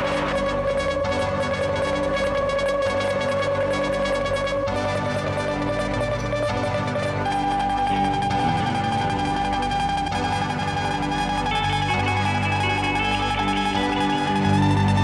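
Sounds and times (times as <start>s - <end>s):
electric guitars droning: 0.0s - 15.0s.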